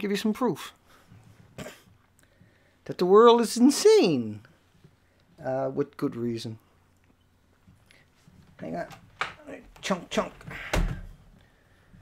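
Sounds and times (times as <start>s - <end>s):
person coughing: 1.6s - 1.9s
person speaking: 2.8s - 4.5s, 8.5s - 11.1s.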